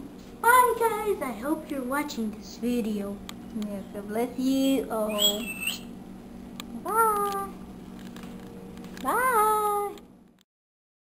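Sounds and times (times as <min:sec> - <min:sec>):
puppy whining cries: 0:05.1 - 0:05.9.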